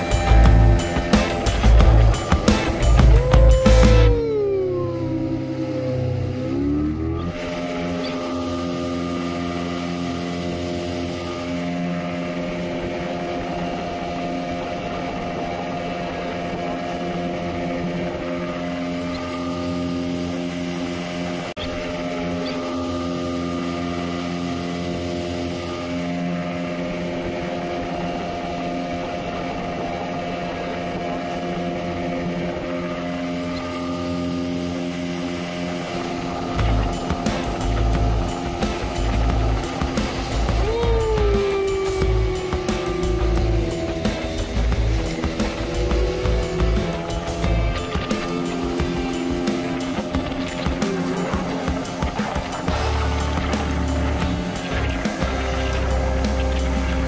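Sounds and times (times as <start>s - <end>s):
outboard motor droning: 0.0s - 57.0s
water rushing along hull: 0.0s - 57.0s.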